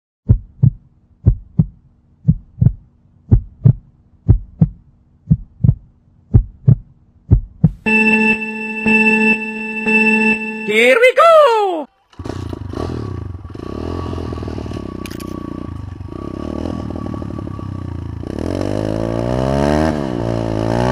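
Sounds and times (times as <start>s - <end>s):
heartbeat thumps: 0.2s - 7.9s
steady electronic tone: 7.8s - 11.2s.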